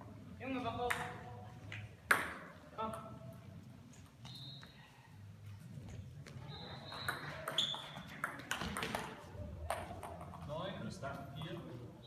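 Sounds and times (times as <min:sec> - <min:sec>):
table tennis ball bounce: 0:00.8 - 0:01.3, 0:02.0 - 0:03.1, 0:06.9 - 0:10.4.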